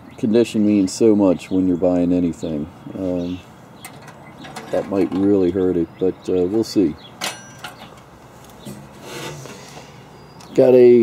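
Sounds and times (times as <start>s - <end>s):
items rubbing and scraping: 3.8s - 5.6s, 7.6s - 10.0s.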